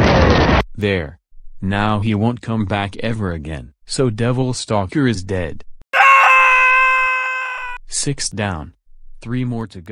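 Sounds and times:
high-pitched cry-like tone: 6.0s - 7.8s.

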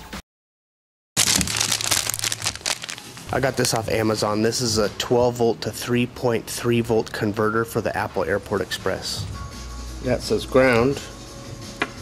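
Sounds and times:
plastic and cardboard crinkling: 1.2s - 3.9s.

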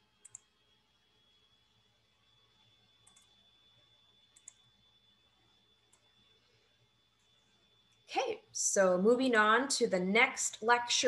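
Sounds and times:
faint high whine: 0.0s - 11.0s
computer mouse clicks: 0.2s - 0.6s, 3.0s - 3.4s, 4.3s - 4.7s, 5.9s - 6.1s.

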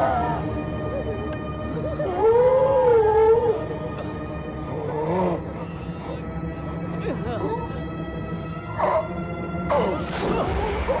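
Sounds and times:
drawn-out howl: 0.0s - 6.4s.

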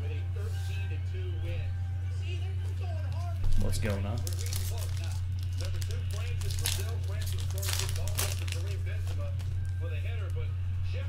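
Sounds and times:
foil wrapper tearing and crinkling: 3.5s - 10.3s.

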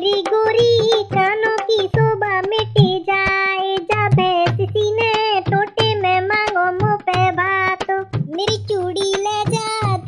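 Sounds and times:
dholak drum beat: 0.0s - 10.0s
woman singing folk song: 0.0s - 10.0s.

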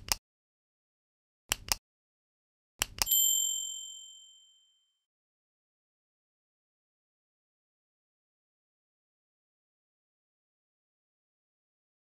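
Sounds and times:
bright bell ding: 3.1s - 4.9s.

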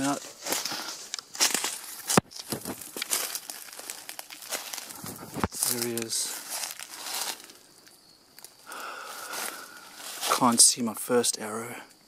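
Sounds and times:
footsteps crunching through dry brush: 0.0s - 7.7s, 8.4s - 10.8s.

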